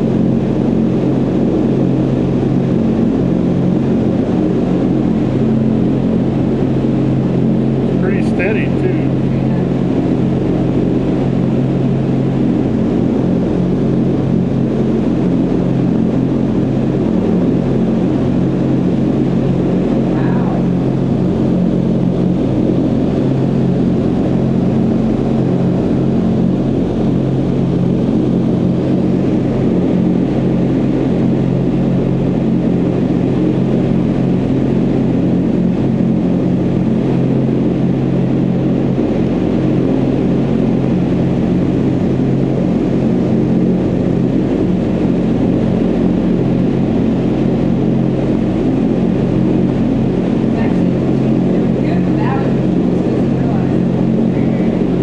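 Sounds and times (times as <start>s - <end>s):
low fan hum: 0.0s - 55.0s.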